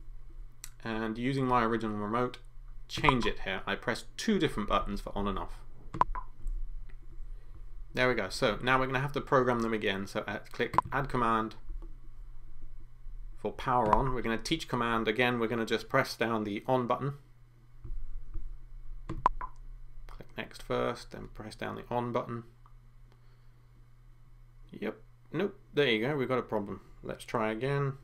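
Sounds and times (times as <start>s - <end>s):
low electrical hum: 0.0s - 28.0s.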